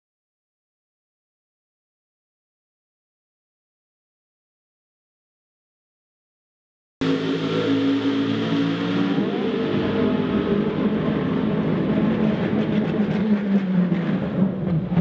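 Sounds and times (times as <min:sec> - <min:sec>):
race car engine running: 0:07.0 - 0:15.0.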